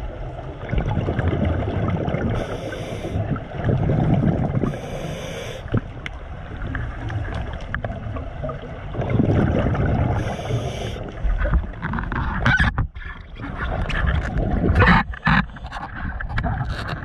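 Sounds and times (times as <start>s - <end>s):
bubbles gurgling underwater: 0.0s - 4.9s, 5.6s - 11.8s, 13.2s - 17.0s
regulator inhale hiss: 2.4s - 3.2s, 4.6s - 5.8s, 10.2s - 11.2s.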